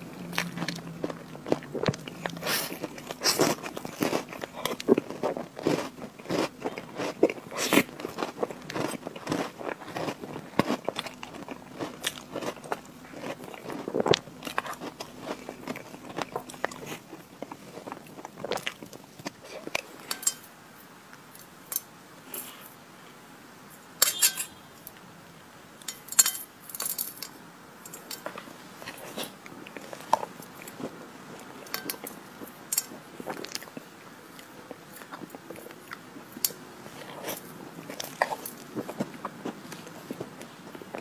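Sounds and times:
cookie crumbs crunching: 0.0s - 20.5s, 27.9s - 41.0s
chewing and mouth sounds: 0.1s - 20.4s, 27.9s - 41.0s.

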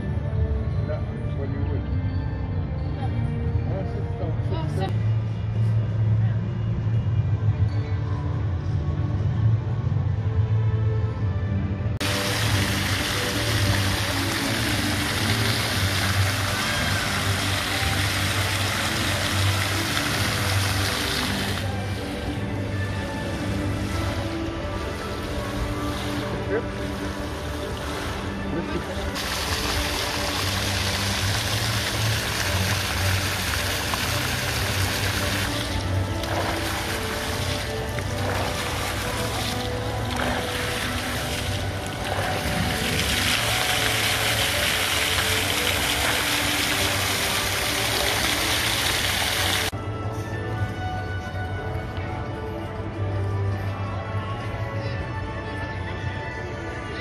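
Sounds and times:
music playing: 0.0s - 57.0s
fountain jets splashing into pool: 12.0s - 49.8s.

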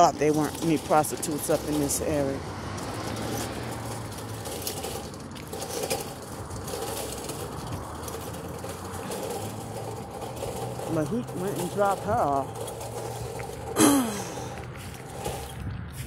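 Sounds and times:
footsteps on asphalt: 0.0s - 16.0s.

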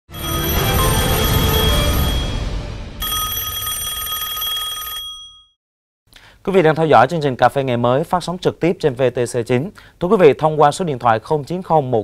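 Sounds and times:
bright electronic ringing tone: 0.1s - 5.5s
deep bass swell: 0.6s - 3.0s.

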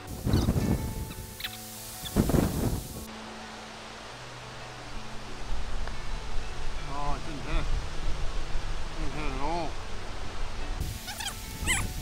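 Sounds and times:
wind buffeting microphone: 0.0s - 1.4s, 2.0s - 3.1s, 10.0s - 12.0s
background music with held notes: 0.0s - 12.0s.

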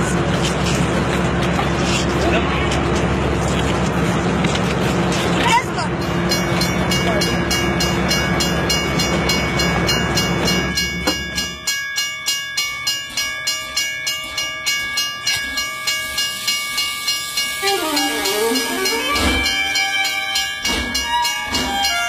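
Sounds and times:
steam locomotive chuffing: 0.0s - 22.0s
steady high tones: 5.8s - 22.0s.

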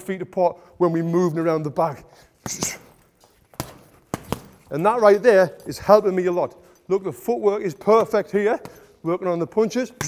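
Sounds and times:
punches landing on heavy bag: 3.6s - 4.6s.

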